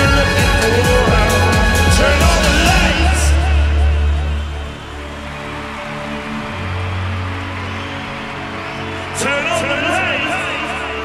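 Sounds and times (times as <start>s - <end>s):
person singing: 0.0s - 4.7s
orchestra with electronic dance backing: 0.0s - 11.0s.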